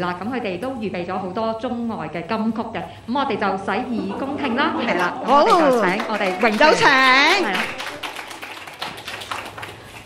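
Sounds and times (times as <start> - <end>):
light applause: 5.0 - 10.0.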